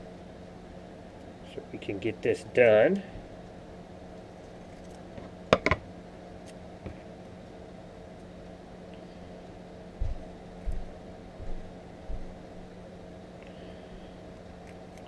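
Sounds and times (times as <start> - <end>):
steady low hum: 0.0 - 15.0
soft low thumps: 9.9 - 12.6.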